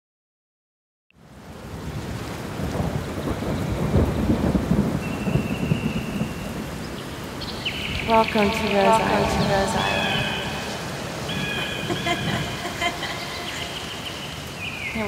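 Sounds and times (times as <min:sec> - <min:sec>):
steady rushing noise: 0:07.4 - 0:15.0.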